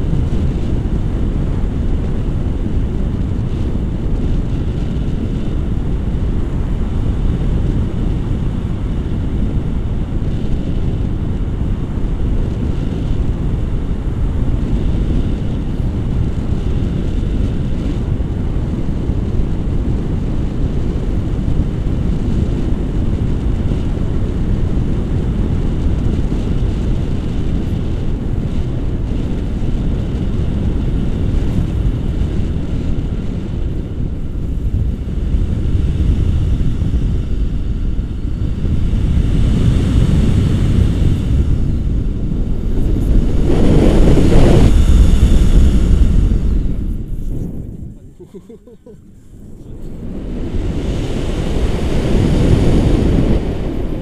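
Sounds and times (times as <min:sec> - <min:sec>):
wind rushing over microphone: 0:00.0 - 0:54.0.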